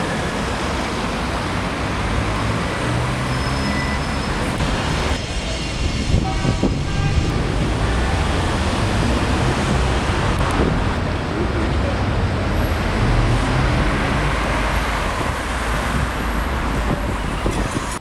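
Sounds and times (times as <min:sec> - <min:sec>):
cars passing on city street: 0:00.0 - 0:18.0.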